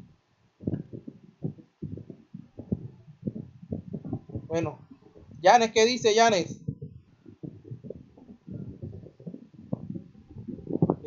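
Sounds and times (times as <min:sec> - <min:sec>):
bumps: 0:00.0 - 0:11.0.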